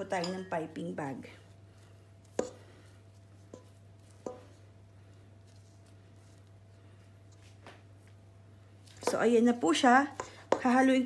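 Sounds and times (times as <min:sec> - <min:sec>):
faint steady hum: 0:00.0 - 0:11.0
spatula knocking on metal bowl: 0:02.4 - 0:02.6, 0:03.5 - 0:04.5, 0:09.0 - 0:09.3, 0:10.1 - 0:10.8.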